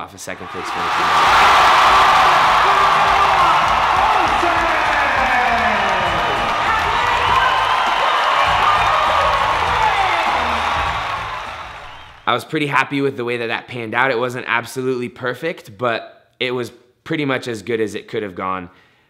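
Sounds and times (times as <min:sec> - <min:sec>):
crowd cheering and shouting: 0:00.3 - 0:12.3
background music: 0:01.0 - 0:12.3.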